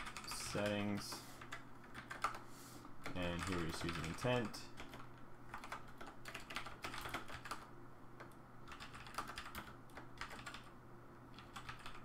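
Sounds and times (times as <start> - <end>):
typing on computer keyboard: 0.0 - 2.4, 3.0 - 10.7, 11.3 - 12.0.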